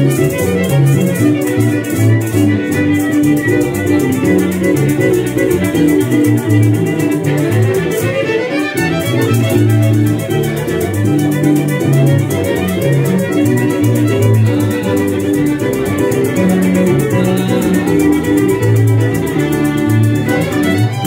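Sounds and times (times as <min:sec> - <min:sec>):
electric bass line: 0:00.0 - 0:21.0
shaken maracas: 0:00.0 - 0:21.0
strummed guitar: 0:00.0 - 0:21.0
violins playing lively tune: 0:00.0 - 0:21.0.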